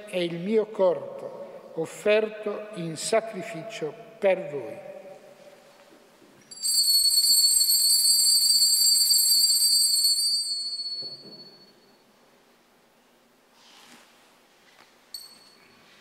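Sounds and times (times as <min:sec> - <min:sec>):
altar bells jingling: 0:06.5 - 0:11.8.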